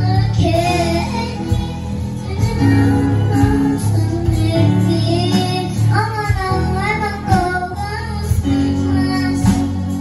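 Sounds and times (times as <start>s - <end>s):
girl singing into a microphone: 0.0s - 10.0s
keyboard: 0.0s - 10.0s.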